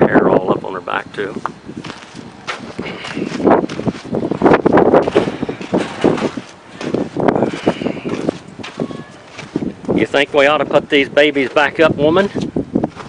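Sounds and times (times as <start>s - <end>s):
wind buffeting microphone: 0.0s - 13.0s
footsteps: 1.4s - 10.1s.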